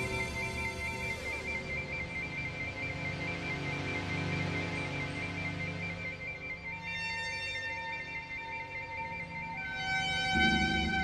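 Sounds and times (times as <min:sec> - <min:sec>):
synth drones: 0:00.0 - 0:11.0.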